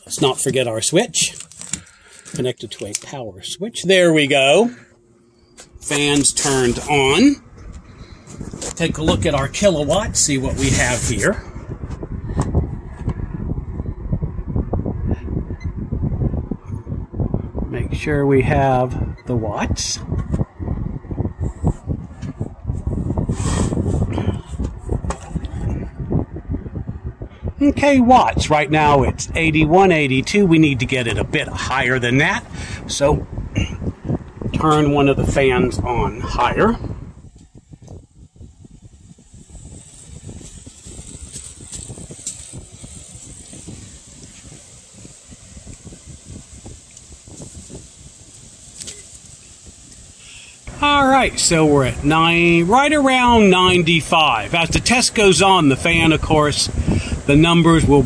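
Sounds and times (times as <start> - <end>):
airflow buffeting microphone: 0.0 - 58.0
box fan running: 0.0 - 58.0.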